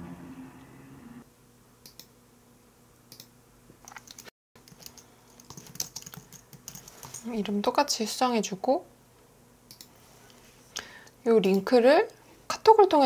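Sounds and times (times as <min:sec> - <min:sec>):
faint keyboard typing: 0:03.1 - 0:07.4, 0:09.7 - 0:10.0.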